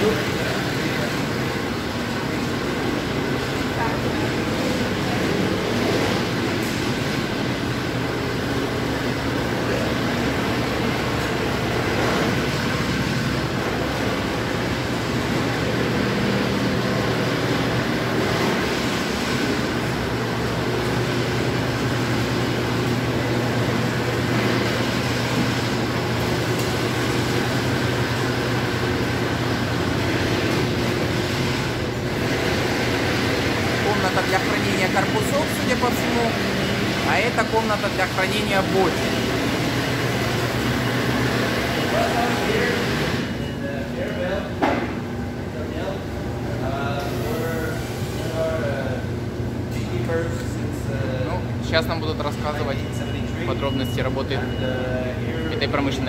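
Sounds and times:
machinery droning: 0.0s - 56.0s.

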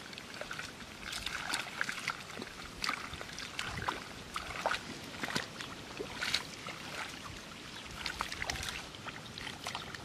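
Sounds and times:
splashing in shallow muddy water: 0.0s - 10.0s.

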